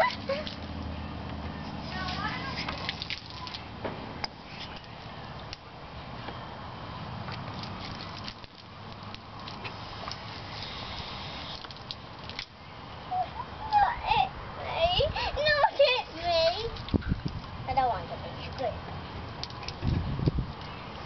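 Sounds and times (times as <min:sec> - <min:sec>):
water from hose splashing: 0:00.0 - 0:01.0, 0:01.6 - 0:05.7, 0:07.2 - 0:12.6, 0:19.3 - 0:21.0
water dripping: 0:02.0 - 0:05.7, 0:07.3 - 0:12.6, 0:19.4 - 0:20.7.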